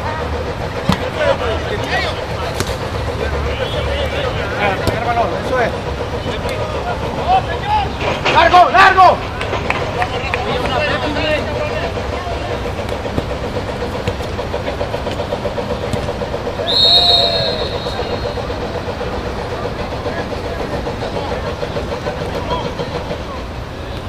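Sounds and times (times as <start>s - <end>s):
referee's whistle blast: 16.6s - 18.5s.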